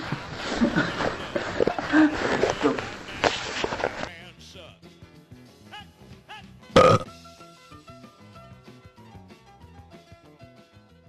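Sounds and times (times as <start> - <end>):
footsteps: 0.0 - 4.1
shuffling: 0.0 - 4.1.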